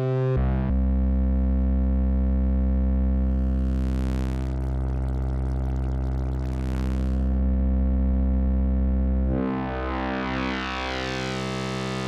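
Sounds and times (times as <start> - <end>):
low synthesizer drone: 1.2 - 12.0.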